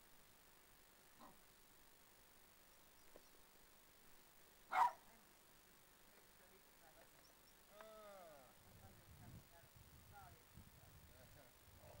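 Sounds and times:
dog barking: 4.7 - 5.0.

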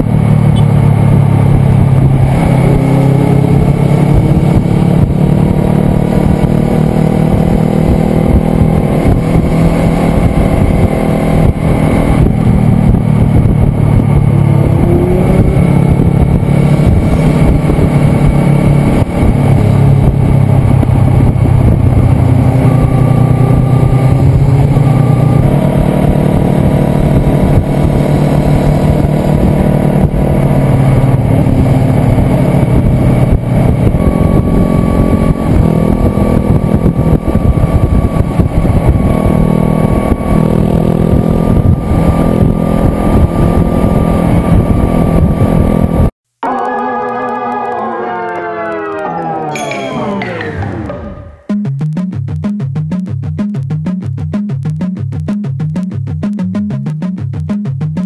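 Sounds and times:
wind and road noise: 0.0 - 46.4
motorcycle engine: 0.0 - 49.6.

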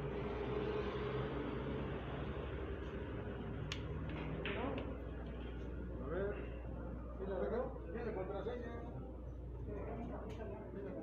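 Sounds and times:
billiard balls clicking: 3.6 - 5.0.

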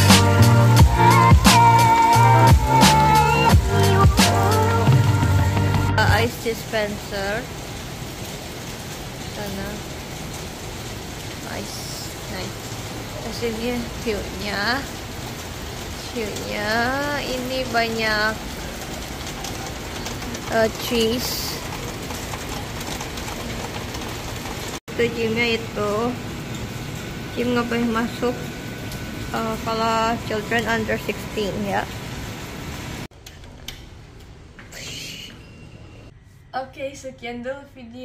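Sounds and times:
heavy rain falling: 0.0 - 33.1
ventilation noise: 6.1 - 35.0.

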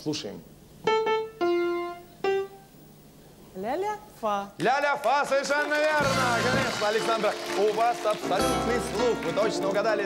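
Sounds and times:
piano notes: 0.8 - 2.7, 6.0 - 10.0.

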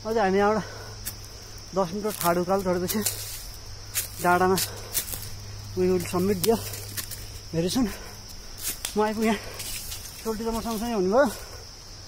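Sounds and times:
insects droning: 0.0 - 12.0
man speaking: 1.7 - 3.2, 4.2 - 4.8, 5.7 - 6.8, 7.5 - 8.1, 8.9 - 9.6, 10.2 - 11.6.

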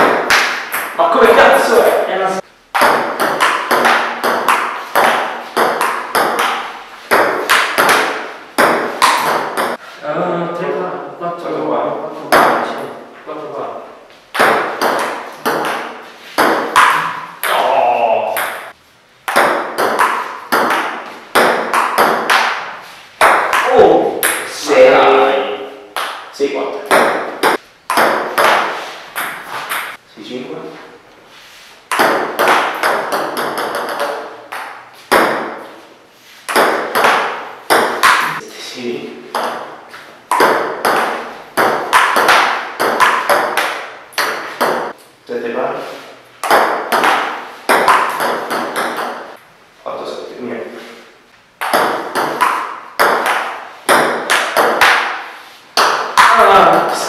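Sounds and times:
ping-pong ball hitting paddles: 0.0 - 1.1, 2.7 - 9.8, 14.3 - 24.6, 25.9 - 30.0, 31.9 - 35.7, 36.4 - 38.4, 39.3 - 45.0, 46.4 - 49.4, 51.6 - 57.0.

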